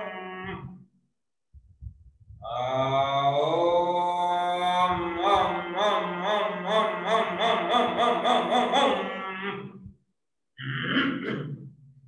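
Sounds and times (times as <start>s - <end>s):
man chanting: 2.4s - 9.9s.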